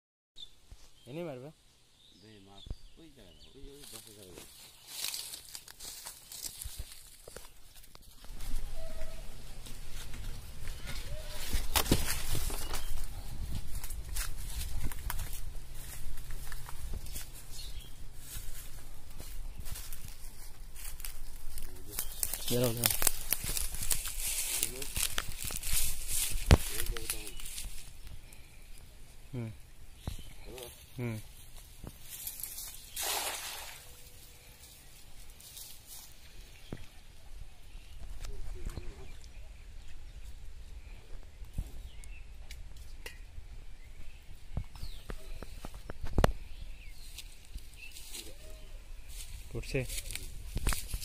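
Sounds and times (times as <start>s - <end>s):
man talking quietly: 2.2s - 4.5s, 26.5s - 27.6s, 29.2s - 29.6s, 30.3s - 31.3s, 38.2s - 39.5s
rustling in dry leaves: 3.7s - 29.2s, 30.0s - 39.1s, 44.8s - 51.0s.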